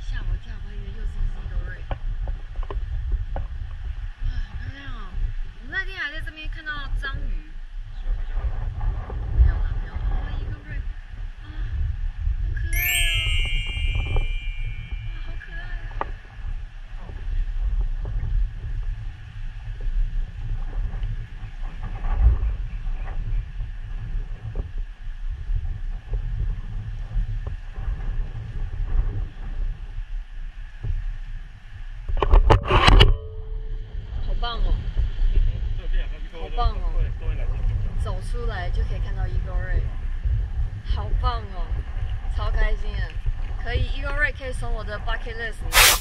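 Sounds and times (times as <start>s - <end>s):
bright chime: 12.7s - 15.9s.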